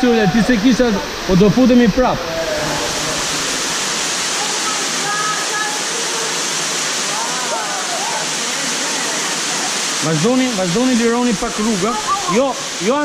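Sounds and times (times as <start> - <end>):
river water rushing: 0.0 - 13.0.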